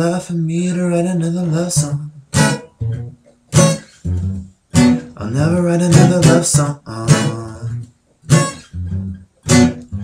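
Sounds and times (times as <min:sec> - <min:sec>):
acoustic guitar strums: 0:00.0 - 0:10.0.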